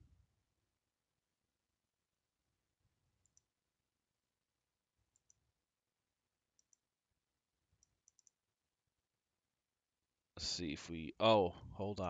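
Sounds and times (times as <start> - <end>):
faint computer mouse clicks: 3.2 - 3.5, 6.6 - 6.8, 7.8 - 8.4.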